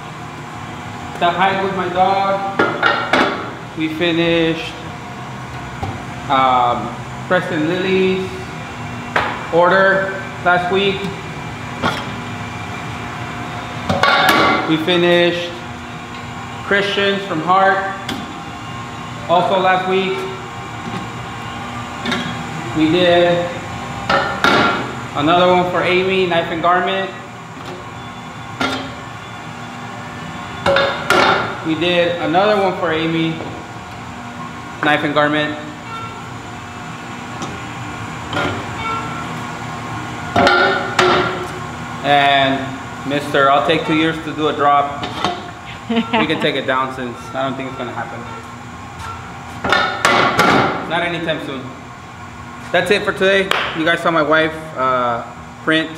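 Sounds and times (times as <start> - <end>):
steady mechanical hum: 0.0 - 55.9.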